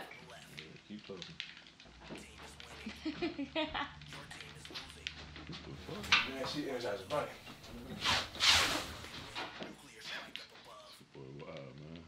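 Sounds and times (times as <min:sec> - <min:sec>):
sharp bursts of noise: 0:07.4 - 0:09.4.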